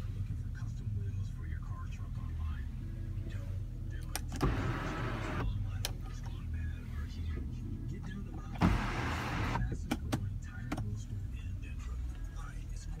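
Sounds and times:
steady low hum: 0.0 - 13.0
power sunroof motor running: 4.4 - 5.6, 8.6 - 9.7.

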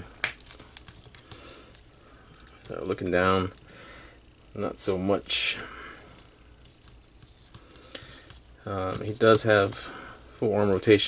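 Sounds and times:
faint clicks and taps: 6.2 - 9.4.

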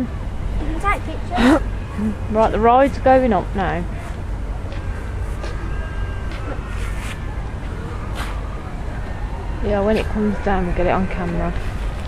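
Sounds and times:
faint high distant sounds: 0.0 - 12.0
low outdoor rumble: 0.0 - 12.0.

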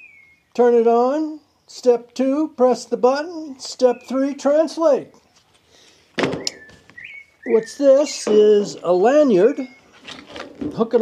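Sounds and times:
cardboard box thunk: 6.2 - 6.8.

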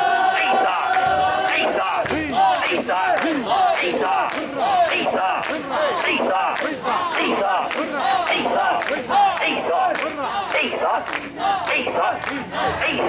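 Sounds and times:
group shouting rhythmic chant: 0.0 - 13.0.

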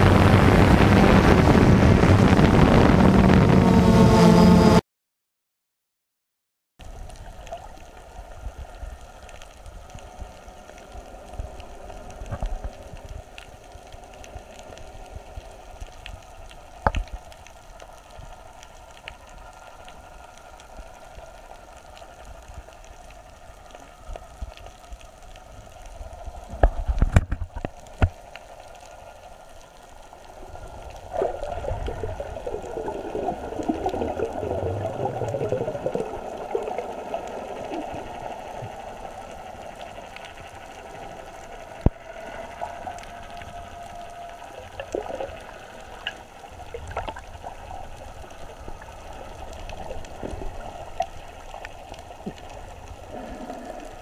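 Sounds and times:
muffled underwater wash: 0.0 - 4.2, 6.8 - 54.0
bubbling gurgling water: 30.4 - 39.1, 41.9 - 54.0.

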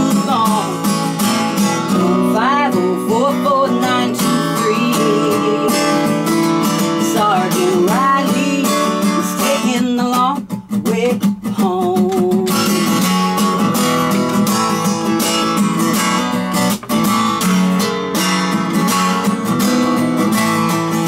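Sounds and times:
woman singing: 0.0 - 13.1
acoustic guitar strumming: 0.0 - 21.0.

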